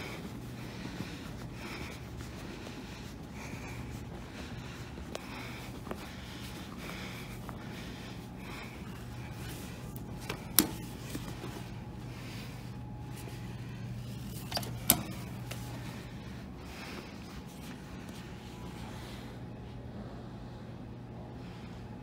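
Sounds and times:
steady low hum: 0.0s - 22.0s
elevator button clicks: 14.3s - 15.6s.

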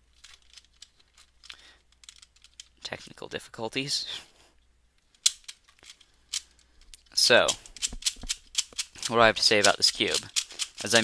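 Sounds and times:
plastic puzzle cube clacking: 0.0s - 3.2s, 5.0s - 11.0s.

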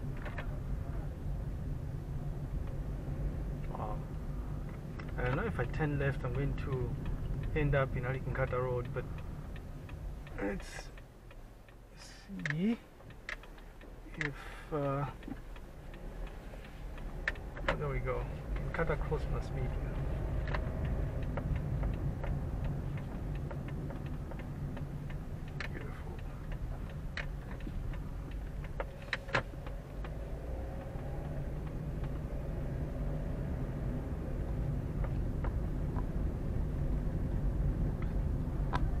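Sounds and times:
car engine and road rumble: 0.0s - 39.0s
sharp clicks and ticks: 0.0s - 39.0s.

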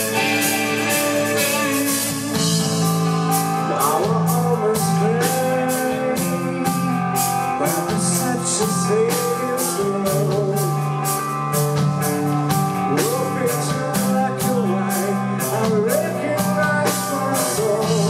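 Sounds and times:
bass guitar: 0.0s - 18.0s
bending lead guitar line: 0.0s - 18.0s
distorted electric guitars: 0.0s - 18.0s
drum kit with cymbal beat: 0.0s - 18.0s.

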